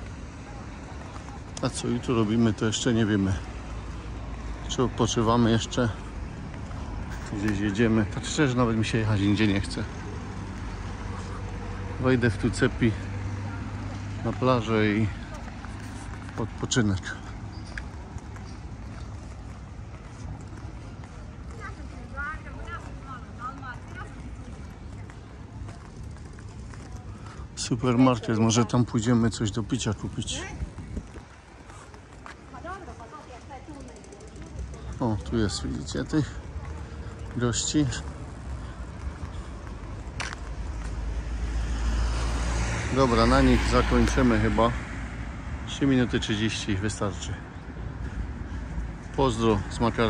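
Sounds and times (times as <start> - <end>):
faint footsteps on stone: 0.0 - 42.0
distant voices: 0.0 - 50.0
low street rumble: 0.0 - 50.0
vehicle approaching on road: 0.0 - 50.0.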